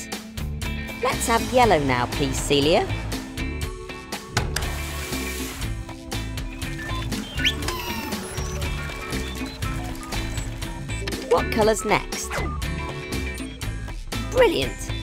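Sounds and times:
cartoon music with steady beat: 0.0s - 15.0s
machine clicking and whirring: 6.6s - 11.3s.

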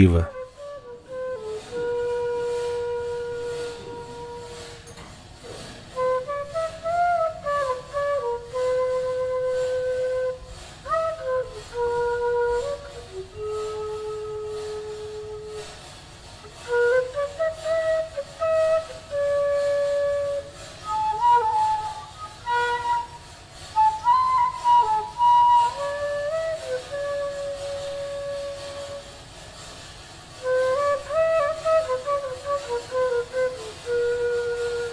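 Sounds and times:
flute long held note: 0.0s - 29.7s, 30.3s - 34.9s.

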